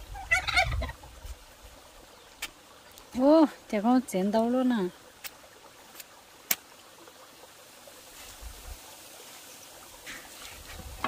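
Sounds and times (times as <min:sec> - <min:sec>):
stream trickling: 0:00.0 - 0:11.0.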